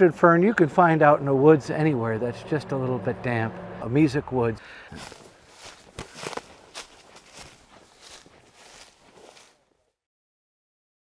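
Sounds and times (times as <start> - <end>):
footsteps rustling through ferns: 4.9 - 9.8.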